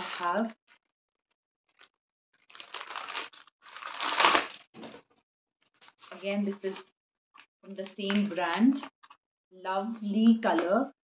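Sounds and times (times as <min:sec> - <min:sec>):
plastic bag crinkling: 0:01.7 - 0:05.0.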